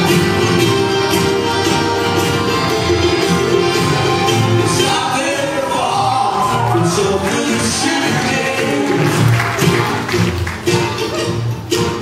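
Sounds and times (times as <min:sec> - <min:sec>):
strummed acoustic guitars: 0:00.0 - 0:12.0
man singing: 0:04.6 - 0:09.3.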